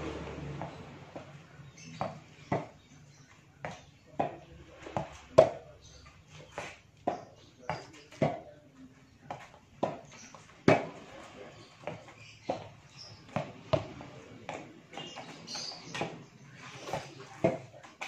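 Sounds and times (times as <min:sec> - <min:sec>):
ball bouncing on concrete: 0:00.0 - 0:18.0
rackets hitting ball: 0:00.1 - 0:03.0, 0:03.6 - 0:08.6, 0:09.3 - 0:18.0.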